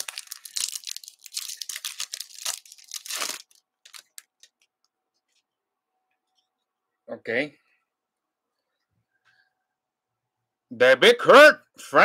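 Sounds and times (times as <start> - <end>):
wrapper tearing and crinkling: 0.0 - 4.5.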